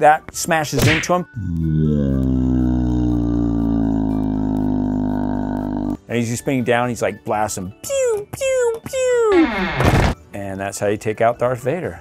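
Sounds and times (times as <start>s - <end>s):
man making low buzzing drone: 1.4s - 6.0s.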